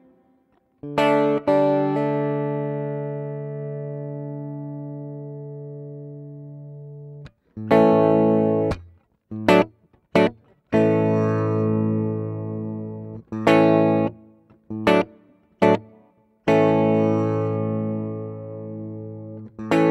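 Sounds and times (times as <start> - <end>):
electric guitar chords ringing: 0.0 - 19.9.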